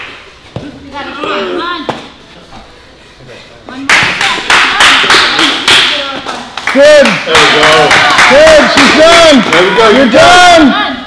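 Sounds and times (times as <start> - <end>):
hands clapping steadily: 3.8 - 9.9
shouts of encouragement: 8.2 - 11.0.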